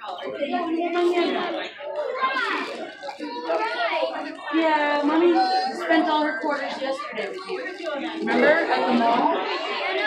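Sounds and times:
indistinct talking: 0:00.0 - 0:10.0
child's voice: 0:00.5 - 0:04.6.

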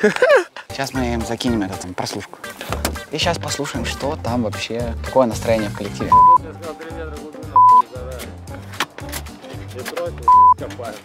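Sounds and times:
background music with a beat: 0:00.7 - 0:11.0
high censor bleeps: 0:06.1 - 0:06.4, 0:07.6 - 0:07.8, 0:10.3 - 0:10.6.

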